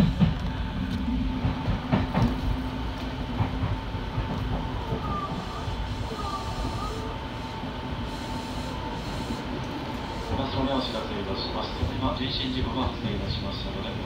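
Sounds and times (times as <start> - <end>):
train wheels rumbling on rails: 0.0 - 14.0.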